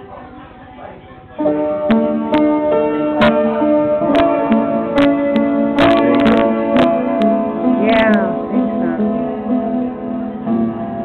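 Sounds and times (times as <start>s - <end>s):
piano playing: 0.0s - 11.0s.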